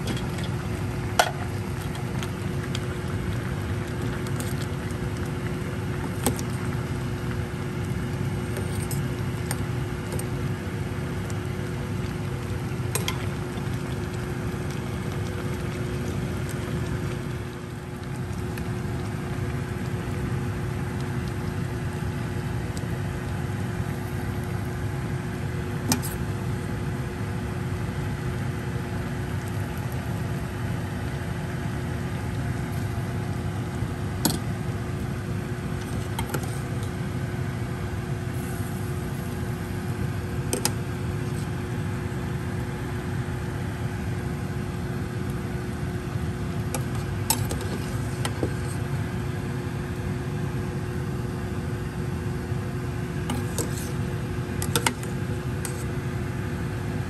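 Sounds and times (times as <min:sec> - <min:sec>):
mechanical hum: 0:00.0 - 0:57.0.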